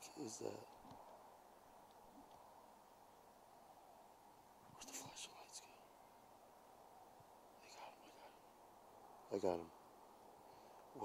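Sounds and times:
steady faint hiss: 0.0 - 11.0
person whispering or breathing: 4.8 - 5.9, 7.6 - 8.5.

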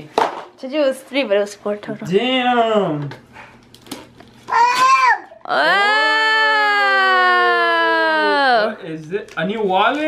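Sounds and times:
high-pitched vocal cry: 4.5 - 8.7.

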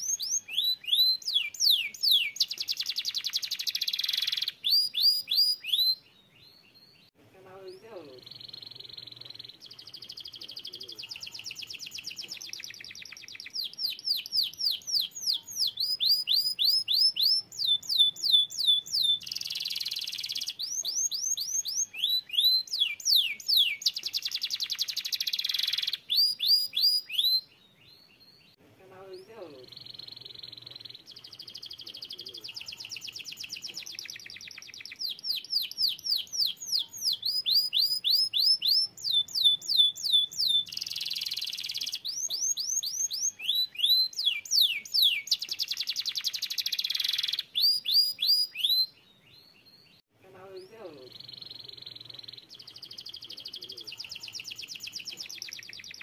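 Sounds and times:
canary singing: 0.0 - 56.0.

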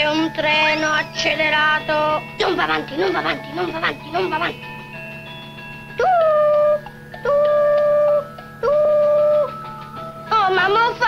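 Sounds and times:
faint background music: 0.0 - 11.0
boy imitating train whistle: 6.0 - 9.5.

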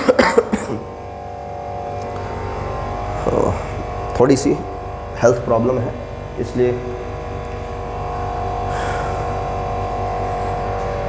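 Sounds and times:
electrical hum and buzz: 0.0 - 11.0.

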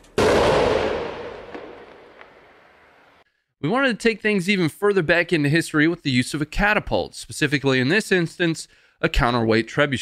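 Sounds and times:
artillery blast: 0.2 - 2.8.

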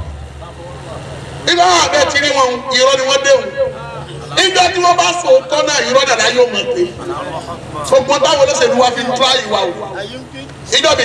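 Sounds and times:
man preaching over loudspeakers: 1.4 - 11.0.

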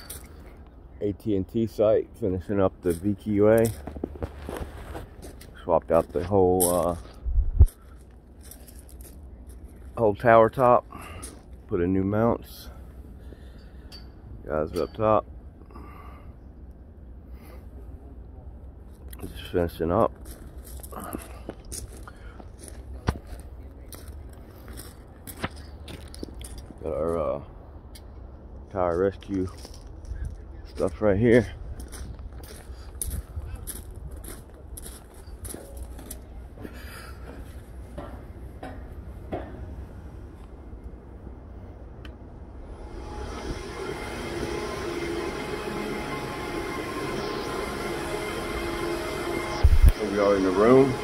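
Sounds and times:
cooling equipment whooshing hum: 0.0 - 51.0.

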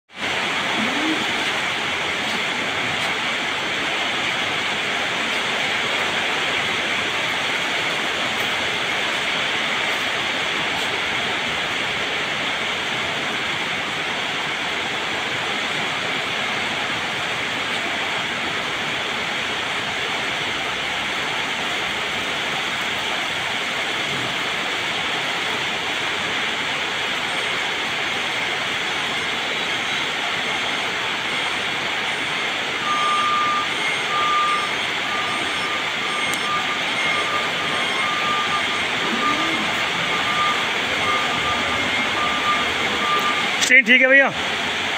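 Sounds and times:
forklift reversing alarm beeping: 27.0 - 43.7.

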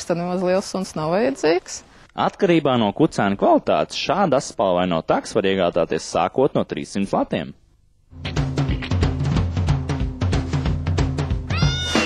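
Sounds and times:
jingle music with drum beat: 8.2 - 12.0
cartoon cat meow effect: 11.5 - 12.0.

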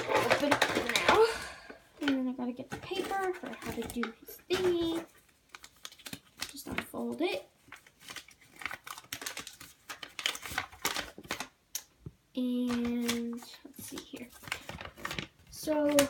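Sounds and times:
paper crinkling and rustling: 0.0 - 1.2, 2.0 - 11.9, 12.5 - 16.0.

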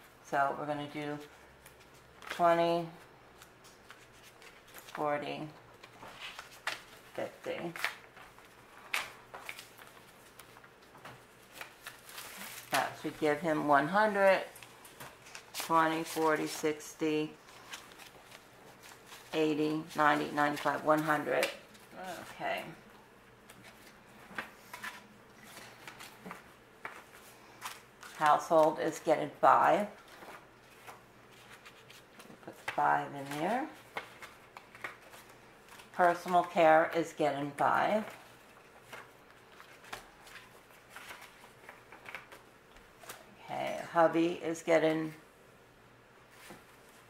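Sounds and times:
paper bills rustling: 1.4 - 16.7, 17.3 - 22.8, 23.4 - 28.8, 29.5 - 37.0, 37.8 - 43.3.

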